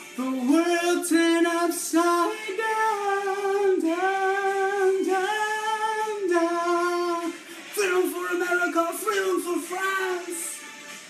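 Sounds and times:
man singing a cappella: 0.0s - 10.6s.

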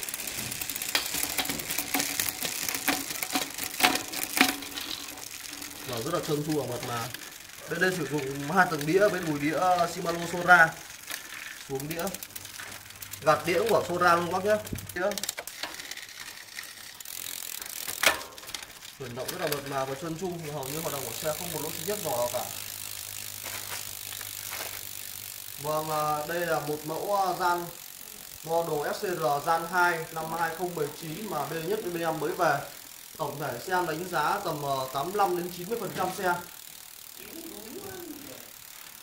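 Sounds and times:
bicycle chain ticking: 0.0s - 39.0s.

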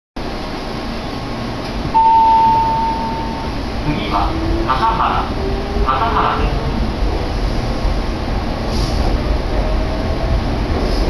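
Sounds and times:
high-pitched beep: 2.0s - 3.6s.

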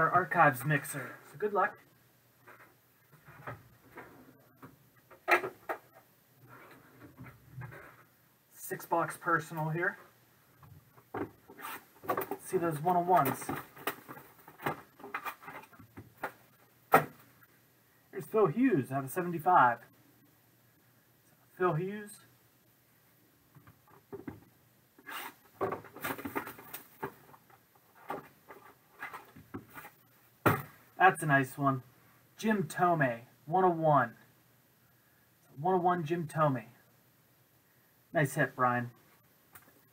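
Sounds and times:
cardboard scraping rub: 11.5s - 11.9s, 25.0s - 25.4s.

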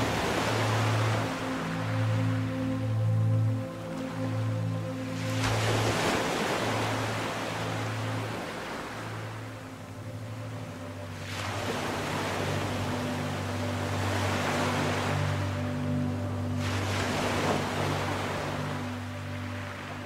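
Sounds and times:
soft musical drone: 0.0s - 20.0s
waves rushing: 0.0s - 20.0s.

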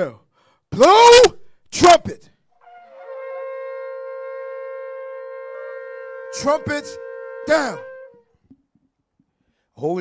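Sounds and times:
horns holding a long note: 2.6s - 8.4s.

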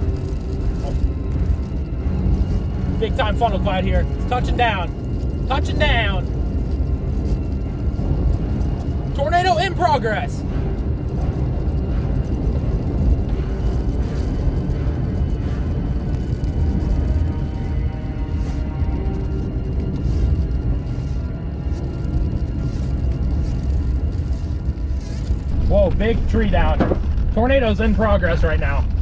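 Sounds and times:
car rumble: 0.0s - 29.0s
dark ominous background music: 0.0s - 29.0s.

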